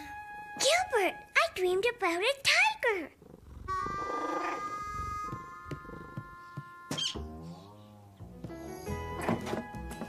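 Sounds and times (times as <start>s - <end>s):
cat purring: 3.1s - 5.2s
sustained music notes: 3.7s - 10.0s.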